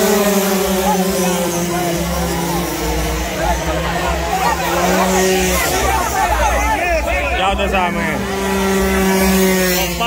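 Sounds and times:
scooter engine buzzing at high revs: 0.0 - 10.0.

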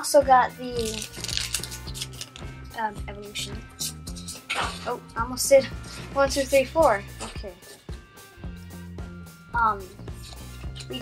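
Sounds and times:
background music: 0.0 - 11.0
foil pack crinkling: 0.8 - 2.4.

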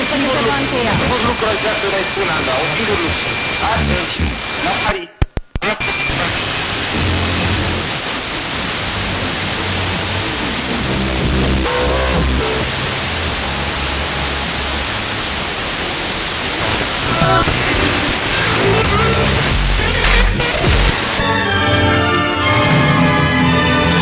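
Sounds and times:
radio static hiss: 0.0 - 21.2
radio tuner clicks: 5.2 - 5.8, 20.0 - 21.2.

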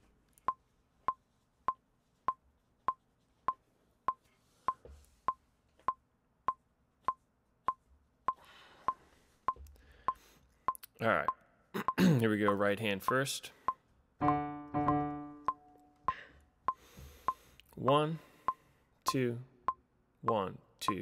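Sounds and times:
metronome ticking: 0.4 - 17.4, 18.4 - 21.0.

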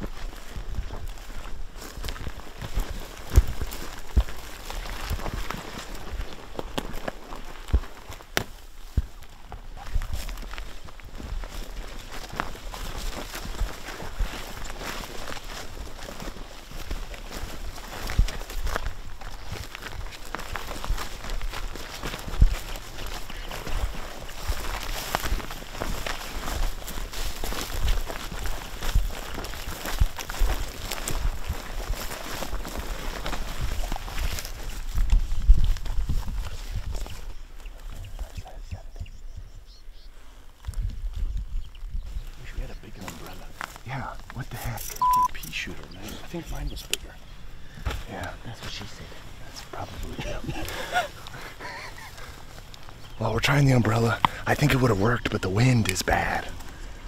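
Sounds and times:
grass stalks rustling: 0.0 - 39.1, 40.0 - 57.0
wind rumbling on microphone: 0.0 - 44.3
footsteps crunching dry grass: 0.0 - 57.0.

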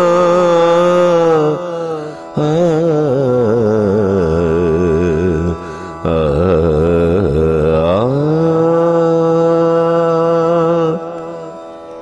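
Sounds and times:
man singing with vibrato: 0.0 - 12.0.

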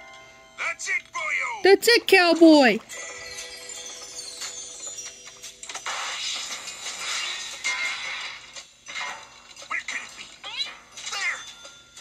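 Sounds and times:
cartoon music: 1.7 - 2.8
cartoon sound effects: 1.7 - 2.8.

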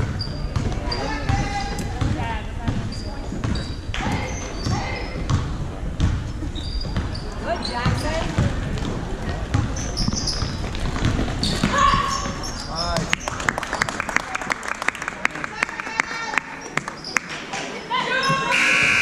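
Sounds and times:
sneakers squeaking: 0.0 - 13.2, 18.0 - 19.0
basketball bouncing on wood floor: 0.1 - 6.2, 7.8 - 12.6
voices calling out: 17.8 - 19.0.

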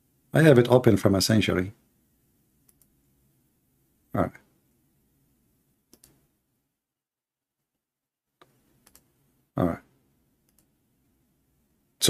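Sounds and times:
computer clicks: 2.6 - 3.0, 5.9 - 6.2, 8.4 - 9.1, 10.4 - 10.7.

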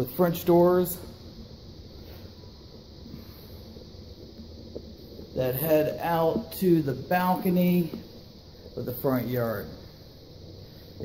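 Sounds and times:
low even hiss: 0.0 - 11.0.

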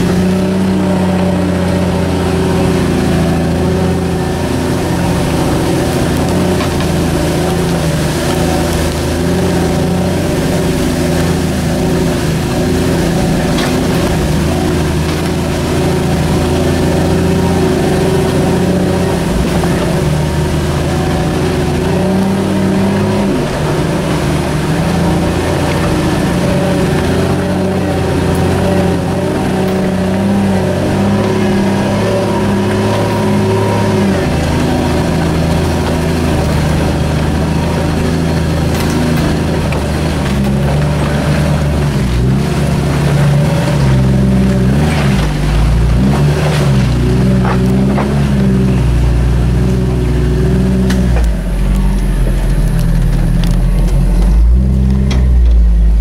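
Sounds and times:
vehicle engine running: 0.0 - 56.0.

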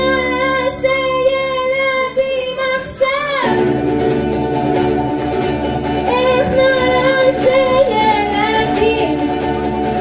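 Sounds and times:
plucked lute: 0.0 - 10.0.

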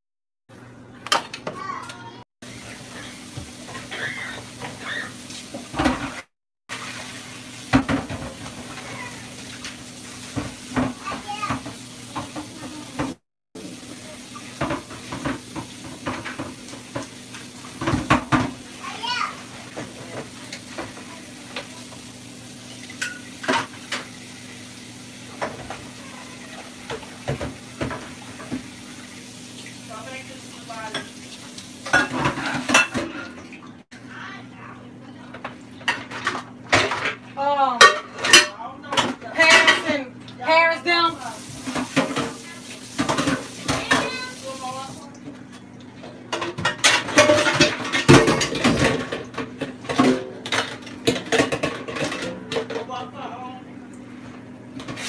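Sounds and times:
pots and pans clattering: 2.6 - 13.2, 14.5 - 22.1, 22.8 - 24.2, 25.3 - 28.8, 30.8 - 33.6, 35.3 - 40.6, 41.4 - 44.4, 46.0 - 53.1.

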